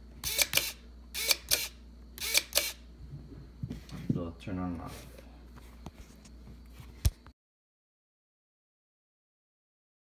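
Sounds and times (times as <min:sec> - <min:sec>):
servo whirring: 0:00.2 - 0:02.8.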